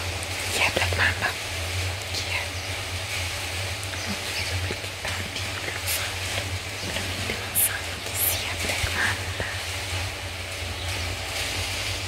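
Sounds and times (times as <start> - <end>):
woman speaking softly: 0.0 - 1.4, 2.1 - 2.8, 3.9 - 9.8
steady low hum: 0.0 - 12.0.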